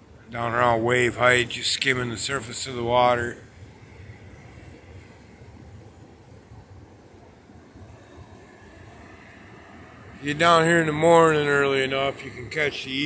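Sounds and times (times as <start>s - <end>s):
low rumble of ocean surf: 0.0s - 13.0s.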